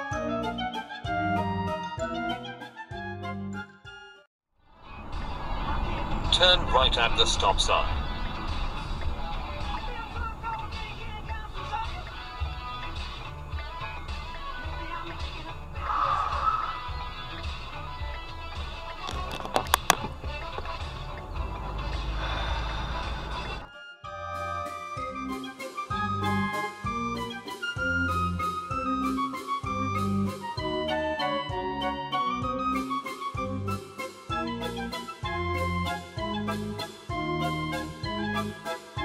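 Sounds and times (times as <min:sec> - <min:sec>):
carnival waltz music: 0:00.0 - 0:04.3, 0:21.0 - 0:39.0
car cabin driving noise: 0:04.8 - 0:15.7, 0:18.4 - 0:23.7
sharp clicks: 0:19.0 - 0:21.3.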